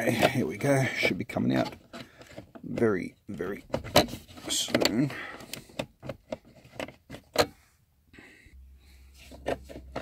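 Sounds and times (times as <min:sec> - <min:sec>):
low steady hum: 0:01.7 - 0:10.0.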